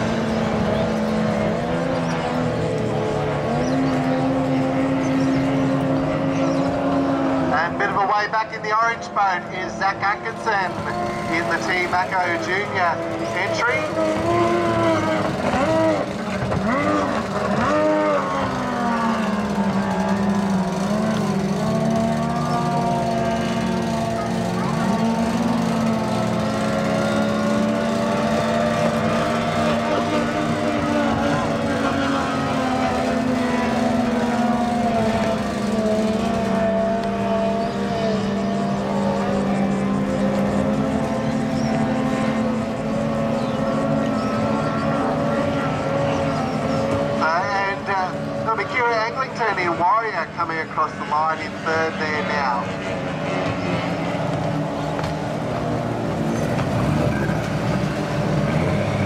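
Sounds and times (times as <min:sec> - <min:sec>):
race boat outboard motors: 0:00.0 - 0:59.0.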